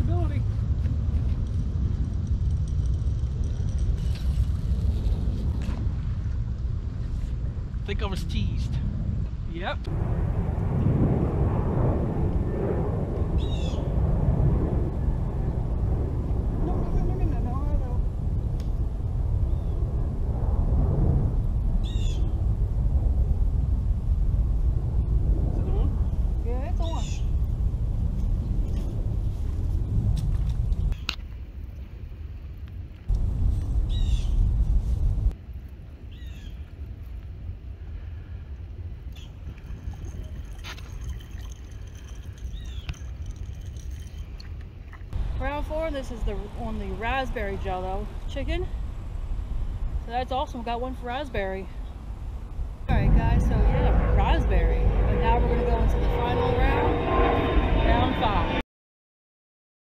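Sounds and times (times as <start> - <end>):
wind rumbling on microphone: 0.0 - 58.6.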